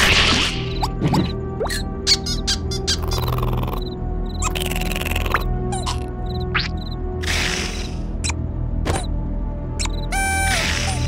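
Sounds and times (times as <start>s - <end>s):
cartoon background music: 0.0s - 11.0s
sharp ticks: 2.8s - 7.0s.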